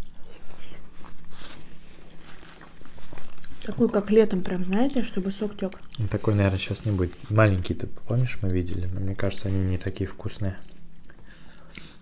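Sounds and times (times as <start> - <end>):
chewing juicy fruit: 2.1 - 3.8, 5.6 - 7.3.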